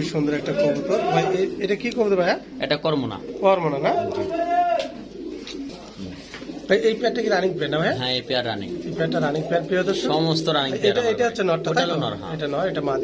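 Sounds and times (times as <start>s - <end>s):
pigeons cooing: 0.0s - 13.0s.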